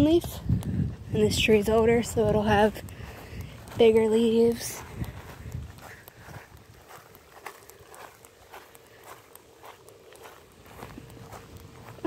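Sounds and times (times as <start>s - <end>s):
footsteps on grass: 0.0s - 12.0s.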